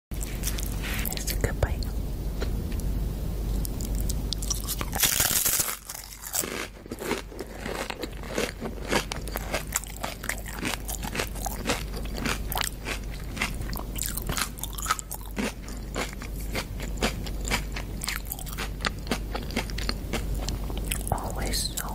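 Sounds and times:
chewing crunchy chip: 3.6s - 21.9s.

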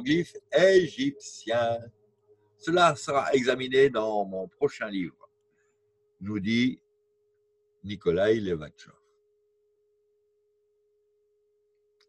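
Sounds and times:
faint steady electronic tone: 0.0s - 12.0s.

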